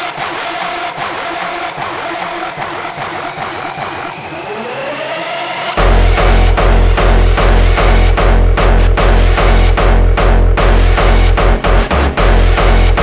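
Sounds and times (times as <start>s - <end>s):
rising synth sweep: 1.1s - 13.0s
heavy kick drum: 5.8s - 13.0s.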